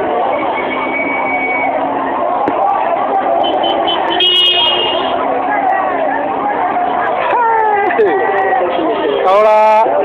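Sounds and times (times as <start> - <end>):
people's voices: 0.0 - 10.0
street traffic: 0.0 - 10.0
vehicle horn: 3.4 - 5.2.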